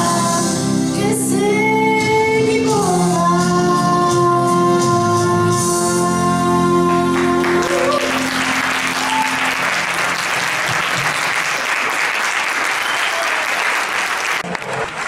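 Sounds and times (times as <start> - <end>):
held chord of backing music: 0.0 - 11.6
audience applauding: 7.0 - 15.0.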